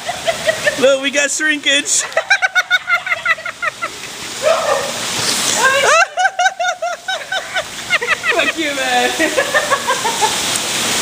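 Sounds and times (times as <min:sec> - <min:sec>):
men laughing: 0:00.0 - 0:01.0, 0:01.9 - 0:05.0, 0:05.6 - 0:10.5
heavy rain hiss: 0:00.0 - 0:11.0
person whooping: 0:04.4 - 0:06.2.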